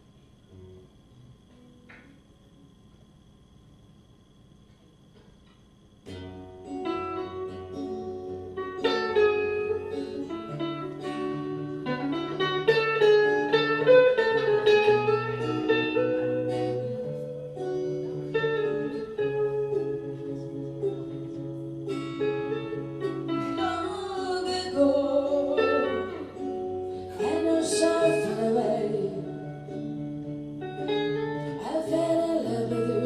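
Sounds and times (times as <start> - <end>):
acoustic guitars playing: 4.6 - 33.0.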